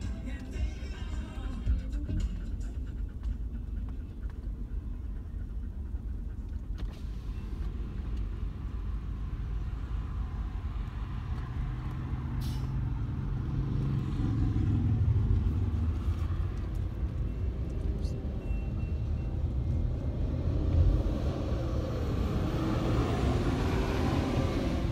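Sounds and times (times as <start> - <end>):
freight cars rumbling past: 6.9 - 24.9.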